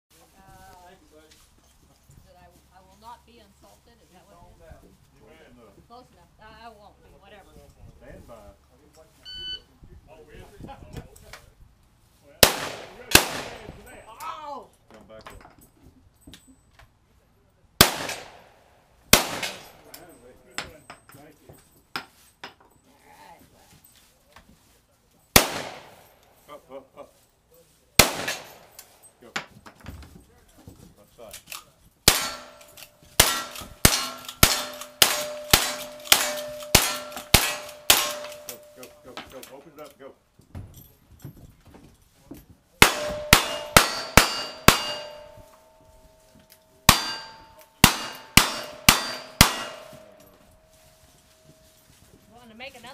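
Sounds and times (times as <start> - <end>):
shotgun shot: 12.4 - 13.8, 17.8 - 18.5, 19.1 - 19.9, 25.4 - 26.1, 28.0 - 28.7, 32.1 - 32.6, 33.2 - 38.7, 42.8 - 45.4
steel plate ringing clang: 32.1 - 39.1, 42.8 - 51.3.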